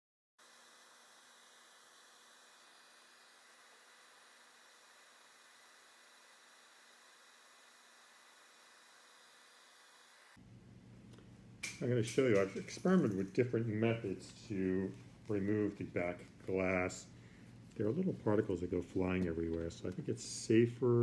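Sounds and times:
faint steady hiss: 0.4s - 21.0s.

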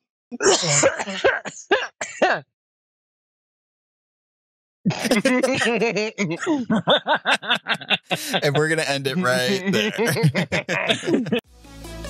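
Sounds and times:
person laughing: 4.9s - 11.4s.

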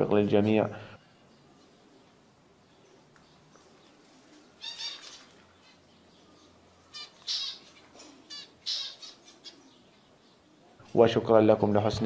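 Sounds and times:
finches buzzy calls: 4.4s - 10.0s.

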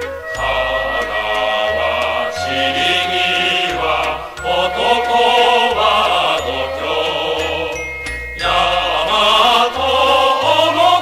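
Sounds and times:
instrumental accompaniment: 0.0s - 11.0s
mixed choir singing: 0.3s - 11.0s.

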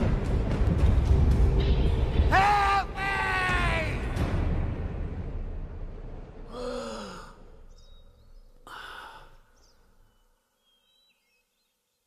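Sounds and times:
person sighing: 6.5s - 7.6s, 8.6s - 9.5s.

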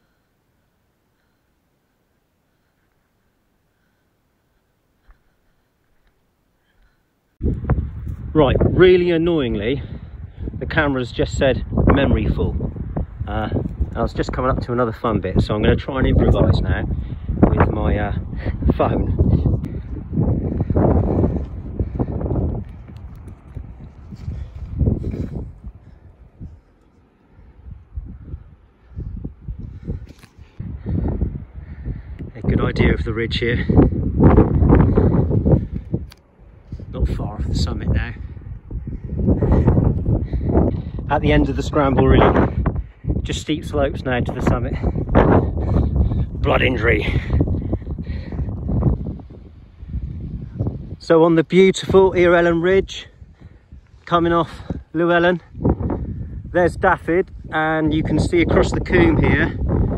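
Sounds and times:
wind buffeting microphone: 7.4s - 59.9s.

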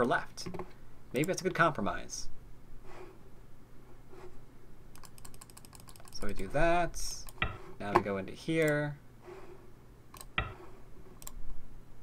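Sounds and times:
computer keyboard clicking: 5.0s - 6.5s.

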